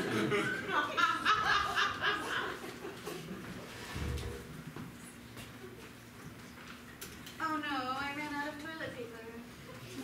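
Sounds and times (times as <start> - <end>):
audience laughter: 0.0 - 3.7.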